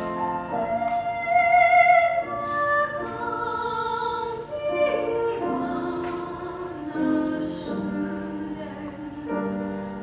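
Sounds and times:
piano accompaniment: 0:00.0 - 0:10.0
woman singing operatically: 0:00.6 - 0:09.5.

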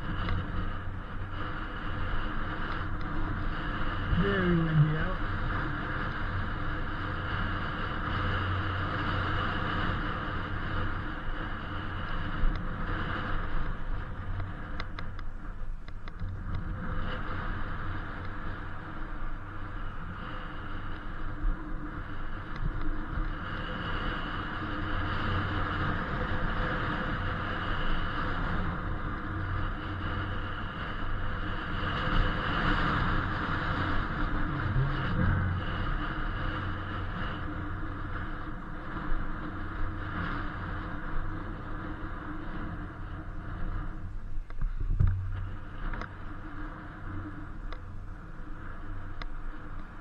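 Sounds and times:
faint high whine: 0:00.0 - 0:50.0
wind rushing over microphone: 0:00.0 - 0:50.0.

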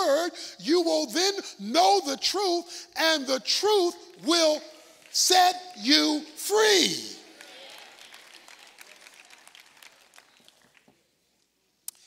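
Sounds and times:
faint scattered clapping: 0:07.2 - 0:12.0.

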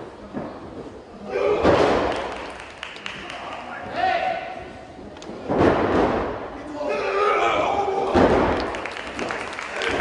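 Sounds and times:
body slamming onto ring canvas: 0:05.4 - 0:06.5, 0:08.0 - 0:08.6.

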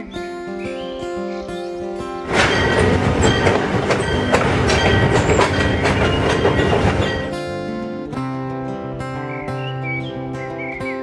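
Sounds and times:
acoustic guitar music: 0:00.0 - 0:11.0
wheels clacking: 0:02.2 - 0:07.8
train rolling on rails: 0:02.2 - 0:07.9.

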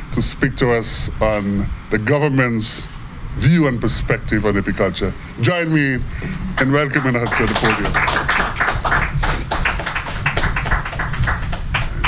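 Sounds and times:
audience applauding: 0:06.5 - 0:12.0.

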